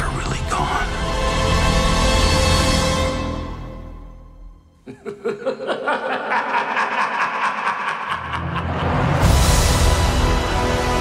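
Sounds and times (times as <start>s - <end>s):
man cackling laugh: 4.8s - 9.3s.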